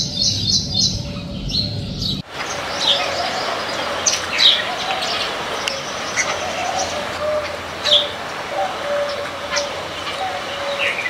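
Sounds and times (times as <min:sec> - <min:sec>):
pigeons cooing: 0:00.0 - 0:11.0
small birds chirping: 0:00.0 - 0:11.0.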